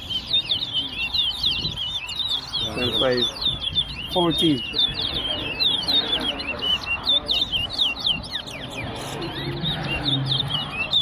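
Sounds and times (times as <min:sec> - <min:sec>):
finch singing high whistles: 0:00.0 - 0:11.0.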